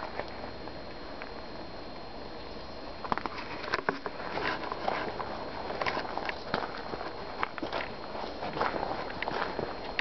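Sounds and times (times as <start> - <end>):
footsteps on gravelly dirt: 3.0 - 10.0.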